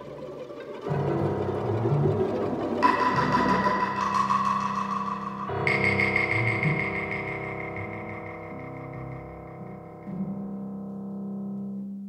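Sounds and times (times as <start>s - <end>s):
orchestra holding dense tone cluster: 0.0s - 10.3s.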